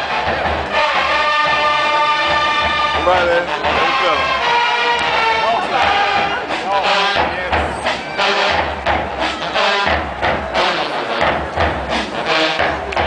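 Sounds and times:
crowd chatter and shouting: 0:00.0 - 0:13.0
marching band music: 0:00.0 - 0:13.0.

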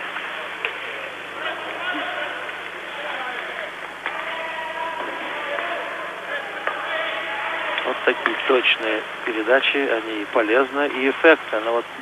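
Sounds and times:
crowd murmuring: 0:00.0 - 0:12.0.

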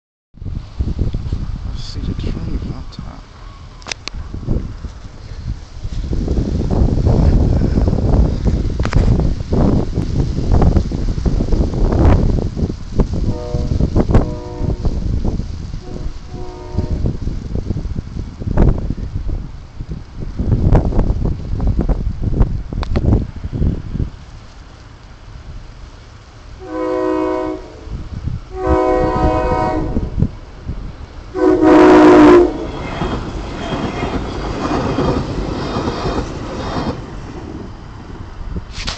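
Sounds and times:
wind buffeting microphone: 0:00.4 - 0:24.4, 0:26.6 - 0:38.9
train rumbling past: 0:00.4 - 0:38.9
train horn blasts: 0:13.2 - 0:15.0, 0:15.8 - 0:17.1, 0:26.6 - 0:27.9, 0:28.5 - 0:30.2, 0:31.3 - 0:34.2.

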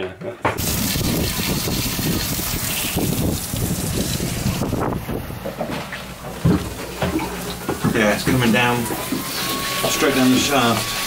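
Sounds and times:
water splashing: 0:00.6 - 0:11.0.

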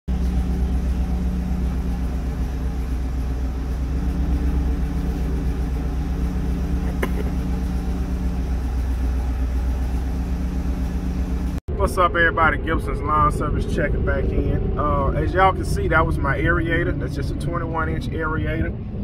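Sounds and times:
engine idling: 0:00.1 - 0:19.0.

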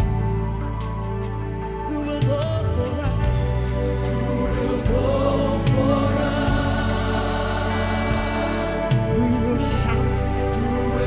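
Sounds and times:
group of voices singing: 0:03.3 - 0:11.0.

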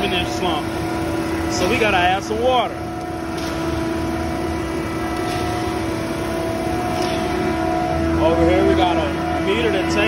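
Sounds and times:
concrete mixer truck humming: 0:00.0 - 0:10.0.

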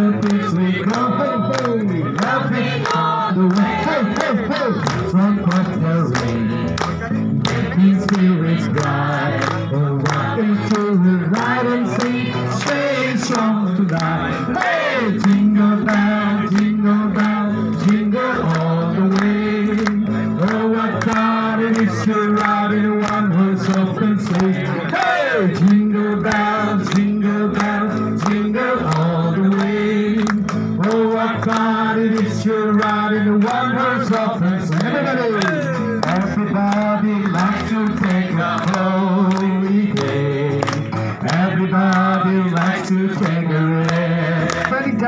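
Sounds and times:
group singing a carol: 0:00.0 - 0:45.0
music with steady beat: 0:00.0 - 0:45.0.

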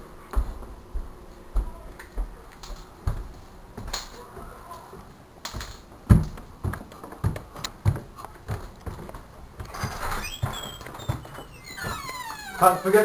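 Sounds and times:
heavy footsteps: 0:00.3 - 0:12.2.

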